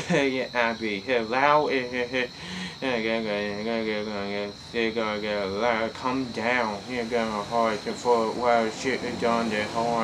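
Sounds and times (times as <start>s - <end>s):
faint high-pitched whine: 0.0s - 10.0s
man talking rhythmically: 0.0s - 10.0s.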